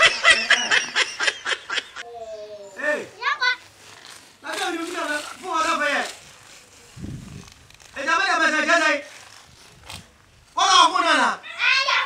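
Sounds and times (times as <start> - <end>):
child laughing: 0.0 - 2.6.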